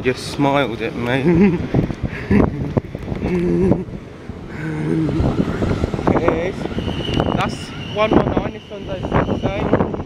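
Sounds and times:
train wheels rumbling: 1.8 - 10.0.

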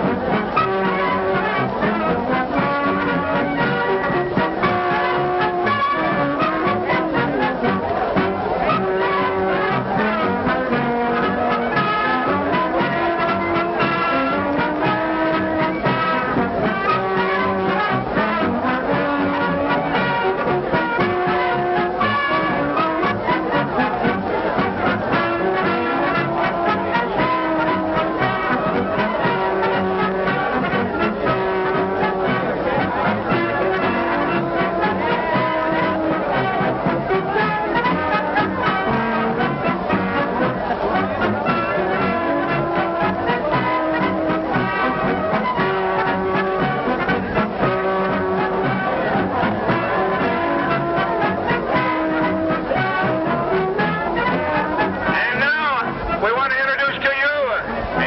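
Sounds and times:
brass band playing: 0.0 - 58.0.

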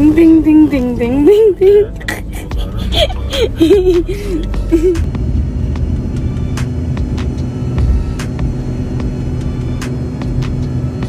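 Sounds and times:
airliner engine rumble: 0.0 - 11.0.

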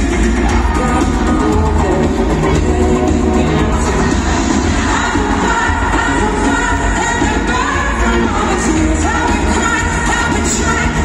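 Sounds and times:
live pop band: 0.0 - 11.0
woman singing into microphone: 0.4 - 11.0.

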